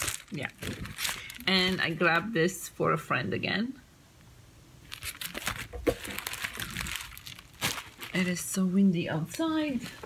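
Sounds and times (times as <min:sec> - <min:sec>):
plastic packaging crinkling: 0:00.0 - 0:02.3, 0:04.8 - 0:08.6.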